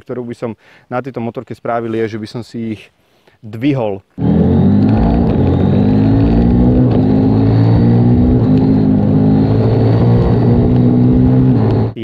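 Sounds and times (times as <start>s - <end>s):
motorcycle engine accelerating: 4.2s - 12.0s.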